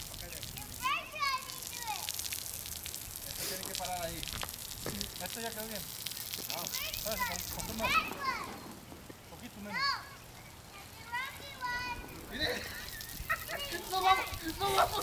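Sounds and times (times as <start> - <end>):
lawn sprinklers hissing: 0.0 - 15.0
children calling and squealing: 0.5 - 2.3, 6.5 - 15.0.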